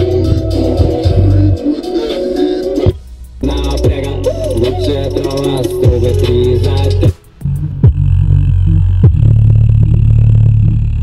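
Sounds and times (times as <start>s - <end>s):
music from speaker with deep bass: 0.0s - 11.0s.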